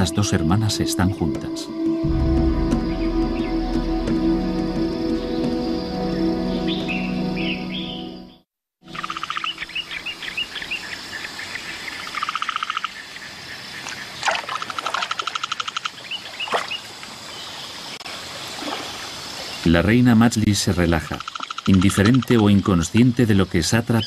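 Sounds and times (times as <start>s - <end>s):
soft music with low tones: 0.0s - 9.9s
birds chirping: 0.0s - 14.4s
bird trills: 8.9s - 13.0s.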